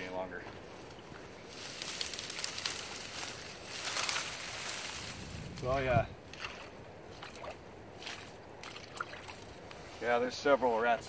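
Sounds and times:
shallow water sloshing and splashing: 6.3s - 9.7s.

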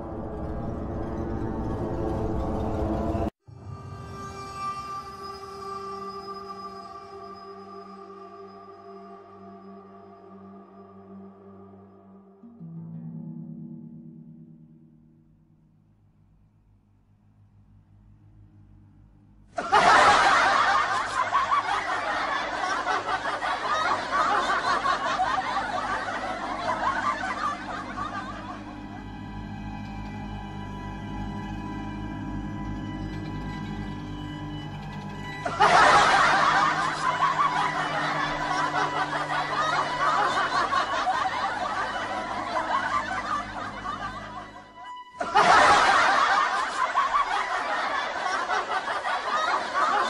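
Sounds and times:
background music: 0.0s - 15.8s, 17.7s - 50.0s
loud laughter: 19.6s - 29.3s, 35.4s - 50.0s.

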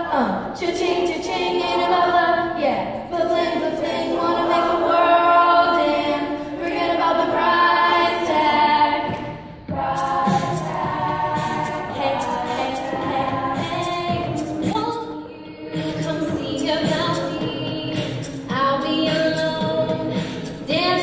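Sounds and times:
female choir singing a cappella: 0.0s - 21.0s.

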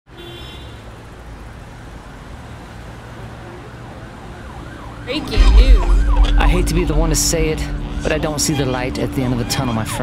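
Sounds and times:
city traffic noise: 0.1s - 10.0s.

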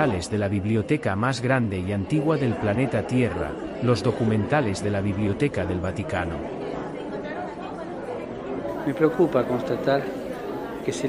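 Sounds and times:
murmur of many voices: 0.0s - 11.0s.

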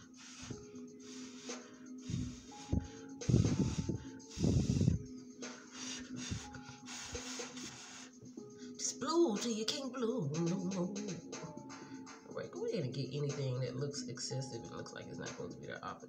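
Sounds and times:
breath blowing puffs: 0.0s - 8.8s
background music: 0.0s - 16.0s.

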